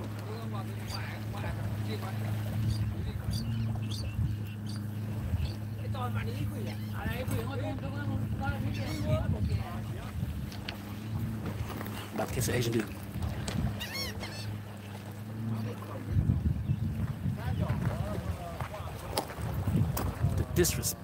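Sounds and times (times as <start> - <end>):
microphone handling rumble: 0.0 - 13.8, 15.4 - 21.0
wind on microphone: 0.0 - 14.3, 15.3 - 21.0
low engine hum: 0.0 - 21.0.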